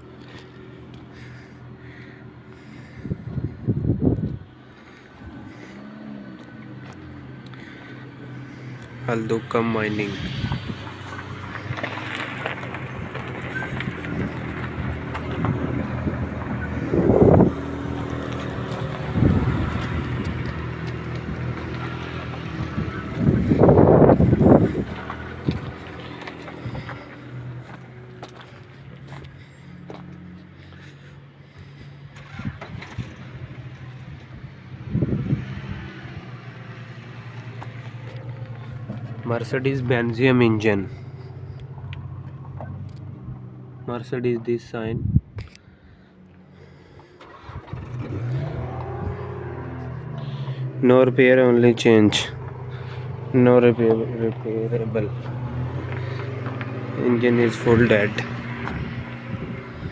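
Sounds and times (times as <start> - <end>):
rushes of noise: 0.0 - 43.8, 45.2 - 59.9
vehicle engine humming: 0.0 - 59.9.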